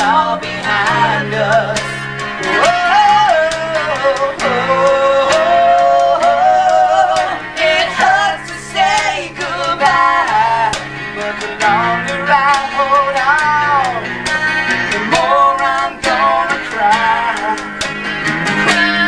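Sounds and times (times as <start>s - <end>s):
rock band on acoustic guitars: 0.0s - 19.0s.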